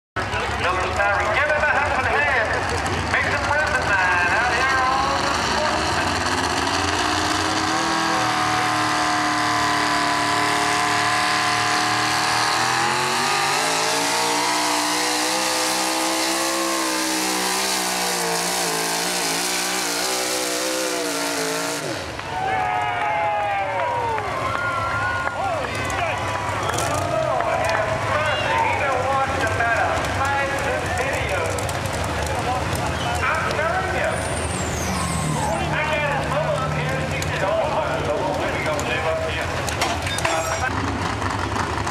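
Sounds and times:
truck engine at high revs: 0.2 - 22.8, 23.9 - 41.9.

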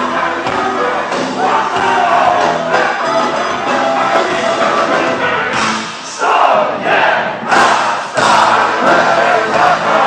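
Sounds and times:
live punk band playing: 0.0 - 10.0
crowd shouting together: 1.3 - 3.1, 6.1 - 10.0.

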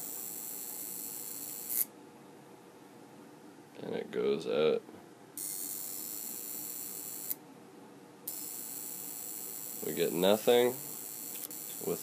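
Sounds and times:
high-pitched electrical hiss: 0.0 - 1.9, 5.4 - 7.4, 8.3 - 12.0.

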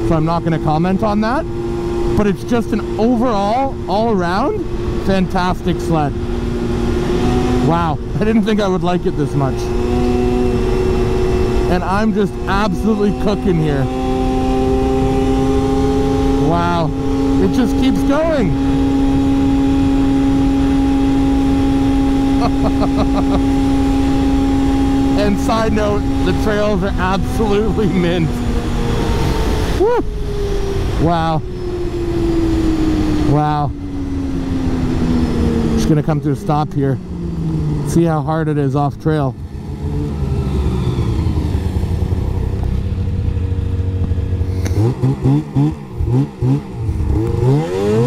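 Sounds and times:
snowmobile engine running hard: 0.0 - 48.0
wind and track noise: 0.0 - 48.0.

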